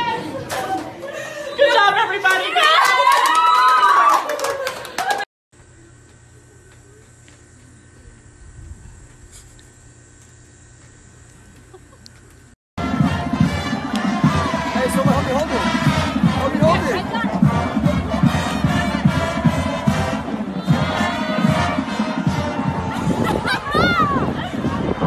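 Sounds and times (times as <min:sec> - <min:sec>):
crowd shouting and cheering: 0:01.6 - 0:05.2, 0:12.8 - 0:25.0
music: 0:12.8 - 0:25.0.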